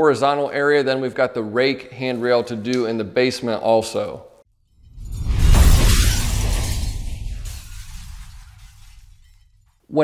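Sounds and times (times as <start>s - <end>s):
shattering crash with low boom: 4.6s - 9.8s.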